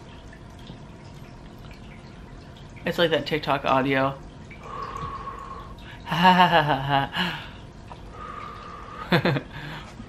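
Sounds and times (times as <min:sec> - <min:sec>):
person laughing: 0:06.0 - 0:07.5, 0:09.1 - 0:09.8.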